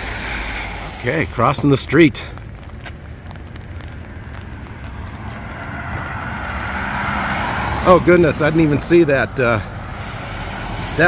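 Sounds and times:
tyres hissing on wet road: 0:00.0 - 0:11.0.

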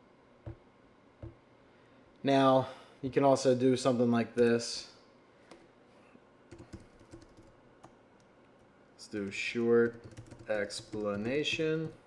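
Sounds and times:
computer keyboard keystrokes: 0:06.5 - 0:08.3, 0:09.3 - 0:12.0.

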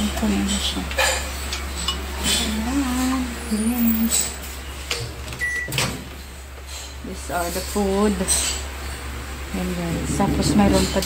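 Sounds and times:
faint steady hum: 0:00.0 - 0:11.0
microwave beep: 0:05.3 - 0:05.9.

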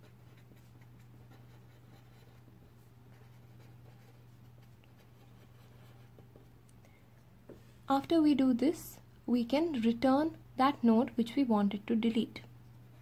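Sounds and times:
pen scratching on paper: 0:00.0 - 0:06.5
steady low hum: 0:00.0 - 0:13.0.

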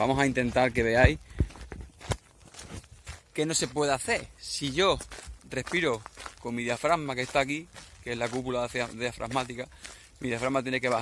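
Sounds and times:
footsteps on dirt track: 0:00.0 - 0:11.0.

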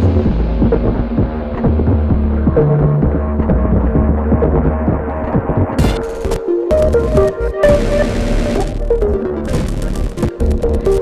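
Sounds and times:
throbbing bass drone: 0:00.0 - 0:11.0
electronic clicks and hits: 0:05.8 - 0:11.0.

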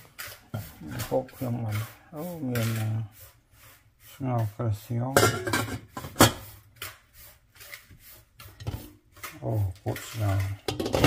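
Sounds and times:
short rasping scrapes: 0:00.0 - 0:05.2, 0:05.8 - 0:10.6
person speaking: 0:00.6 - 0:03.2, 0:04.0 - 0:05.5, 0:09.2 - 0:10.7.

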